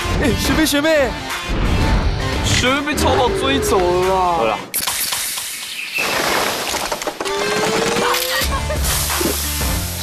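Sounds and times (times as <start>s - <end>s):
beer spraying from can: 8.7s - 10.0s.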